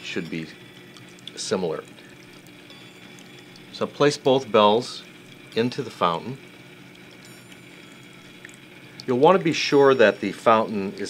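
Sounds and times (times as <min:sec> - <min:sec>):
faint high ringing tone: 0:00.0 - 0:11.0.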